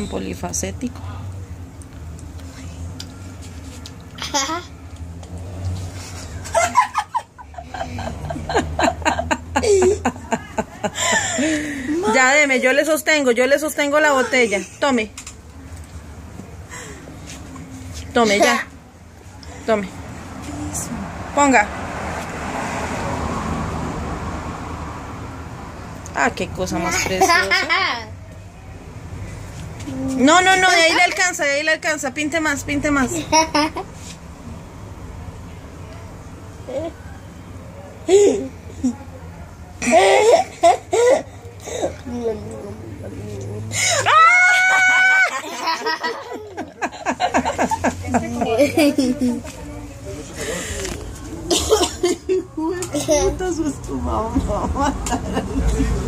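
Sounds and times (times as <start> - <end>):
vehicle passing: 0.0 - 56.0
voice: 47.6 - 56.0
person coughing: 51.5 - 52.2.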